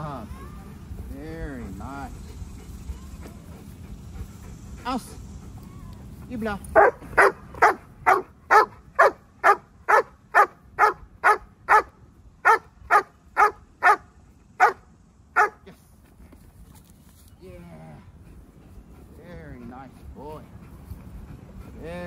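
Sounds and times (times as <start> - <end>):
dog barking sharply: 6.8 - 14.0.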